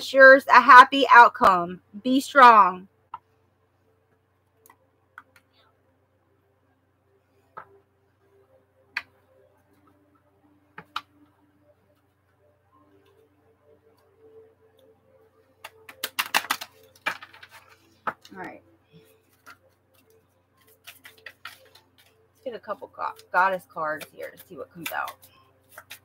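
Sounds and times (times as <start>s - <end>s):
cards being shuffled: 15.6s - 18.4s, 19.1s - 26.0s.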